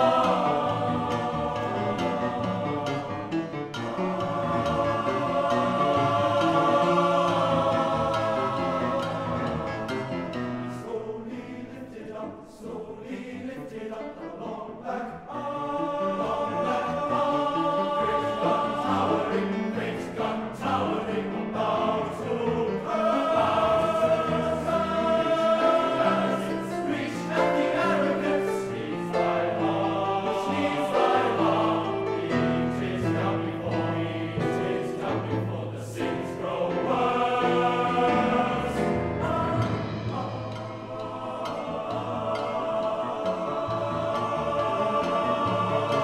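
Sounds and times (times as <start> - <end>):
boys' choir singing: 0.0 - 46.0.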